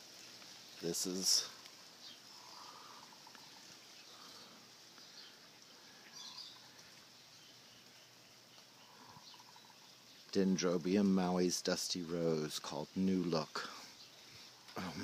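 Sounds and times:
faint chirps: 0.1 - 15.0.

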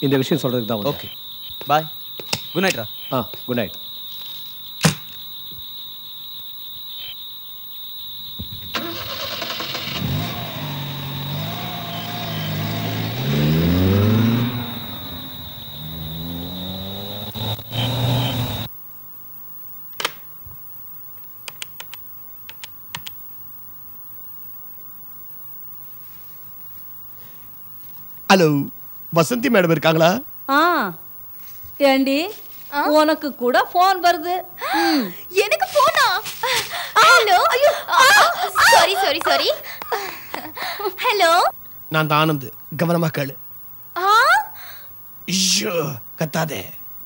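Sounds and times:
car engine accelerating: 8.8 - 18.7
faint clicks: 21.2 - 23.2.

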